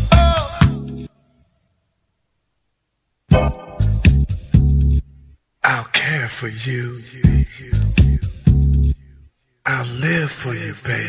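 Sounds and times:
vocal sample with sliding pitch: 3.3s - 4.4s.

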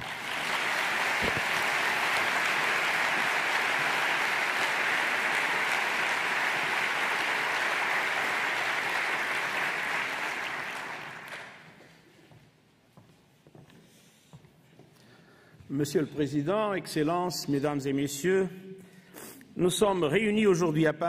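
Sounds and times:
audience applauding: 0.0s - 11.8s.

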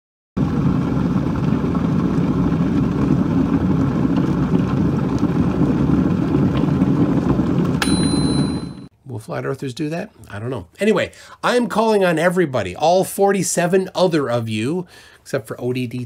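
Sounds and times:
low rumbling noise: 0.4s - 8.9s
high steady beep: 7.8s - 8.9s.

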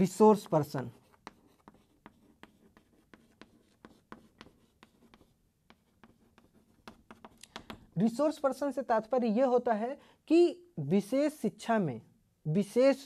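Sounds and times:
chalk writing on blackboard: 0.0s - 8.0s.

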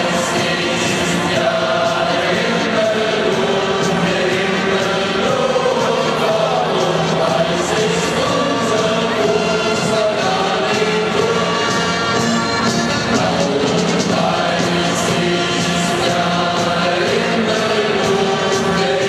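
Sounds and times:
crowd noise: 0.0s - 19.0s
stadium crowd singing: 0.0s - 19.0s.

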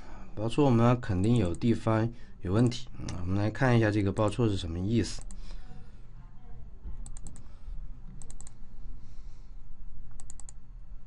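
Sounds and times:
low steady hum: 0.0s - 11.0s
computer mouse clicks: 5.2s - 5.4s, 7.0s - 7.5s, 8.1s - 8.6s, 10.1s - 10.6s.

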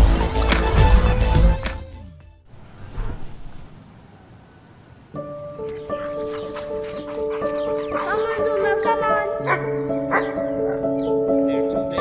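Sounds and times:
soft piano music: 5.1s - 12.0s
dog barking: 6.0s - 10.8s.

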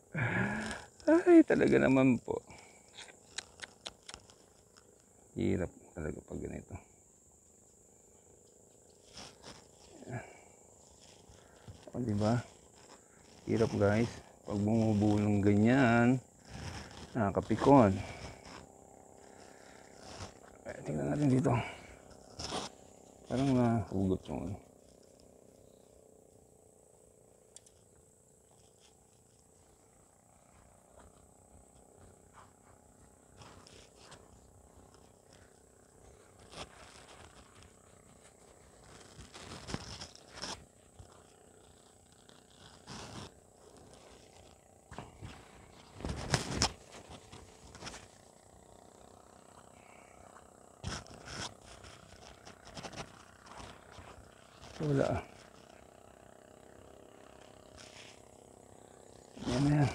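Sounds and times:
high insect drone: 0.0s - 59.9s
soft rustles: 8.2s - 23.7s, 28.4s - 56.0s.

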